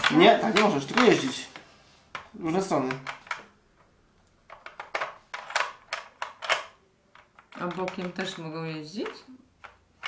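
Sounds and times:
plastic puzzle pieces clicking: 0.0s - 10.0s.

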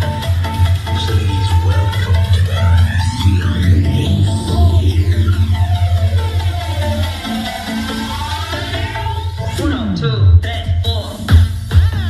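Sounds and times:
heavy bass line: 0.0s - 11.6s
electronic dance music: 0.0s - 12.0s
rising synth sweep: 0.3s - 9.4s
repeating synth note: 0.4s - 9.4s.

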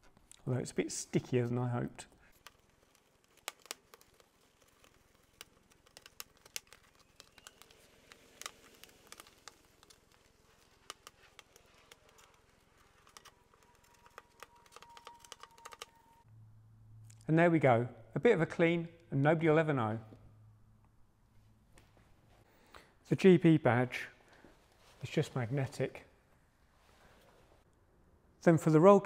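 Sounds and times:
sticky tape peeling off car: 2.2s - 16.2s.

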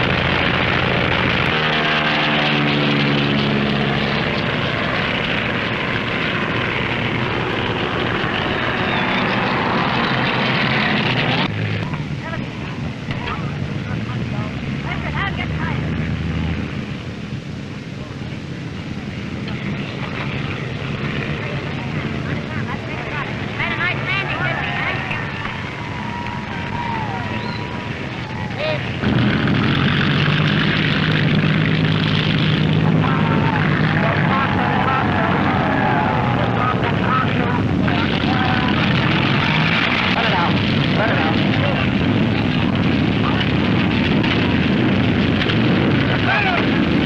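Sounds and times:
propeller airplane engine droning: 0.0s - 47.0s
crowd shouting and cheering: 23.6s - 29.0s, 33.0s - 38.7s
thin whistle-like tone: 27.3s - 27.7s.

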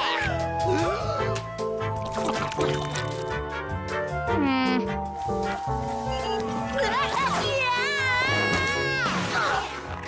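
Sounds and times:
cartoon music with steady beat: 0.0s - 7.7s.

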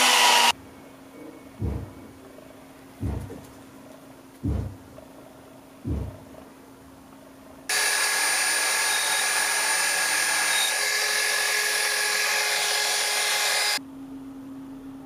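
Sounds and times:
electric drill whining: 0.0s - 0.5s, 7.7s - 13.8s
low thump: 1.6s - 2.0s, 3.0s - 3.4s, 4.4s - 4.9s, 5.8s - 6.3s.

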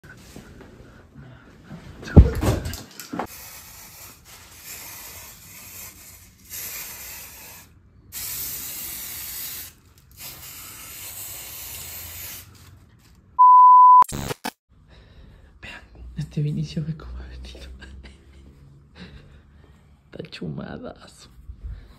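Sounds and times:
aerosol spray can hissing: 3.3s - 12.5s
loud steady beep: 13.4s - 14.1s.

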